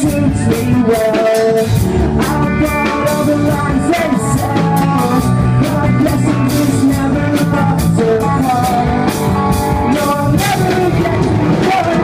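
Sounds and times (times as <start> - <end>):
drum kit beat: 0.0 - 12.0
electric guitars: 0.0 - 12.0
man singing: 0.0 - 12.0.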